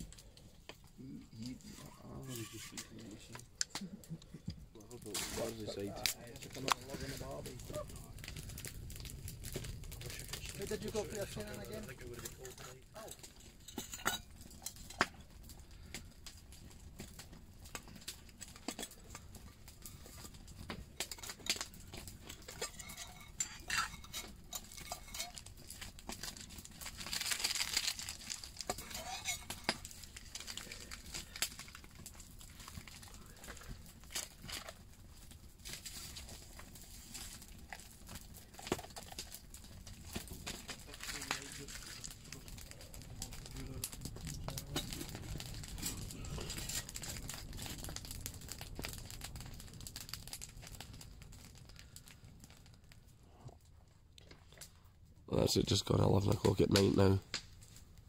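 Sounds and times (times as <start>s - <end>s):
campfire crackling and popping: 0.0s - 58.0s
metal mug handling: 22.5s - 25.4s
paper sachet rustling: 27.0s - 31.4s.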